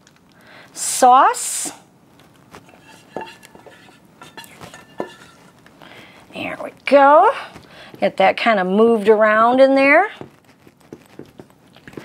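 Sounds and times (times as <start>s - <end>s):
spatula scraping saucepan: 2.6s - 6.0s
spatula knocking on pan and dish: 2.7s - 5.5s.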